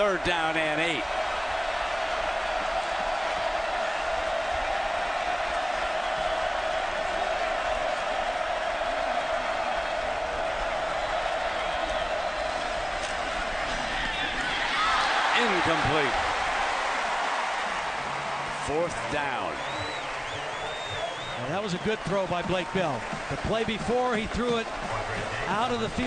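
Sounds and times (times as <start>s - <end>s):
stadium crowd roar: 0.0s - 26.0s.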